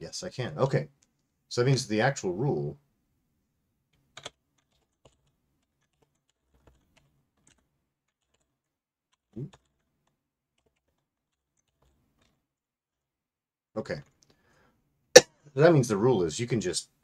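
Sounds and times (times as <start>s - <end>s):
computer keyboard typing: 4.1s - 12.4s.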